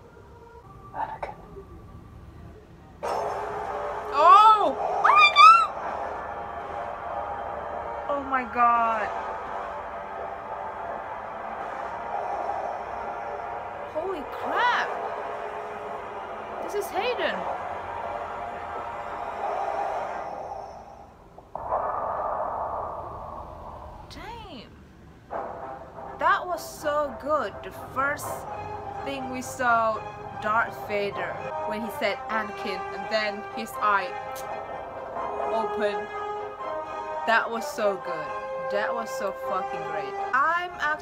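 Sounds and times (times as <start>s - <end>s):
low film score: 0.0s - 41.0s
sustained soundtrack drone: 0.0s - 41.0s
woman squealing excitedly: 4.3s - 5.8s.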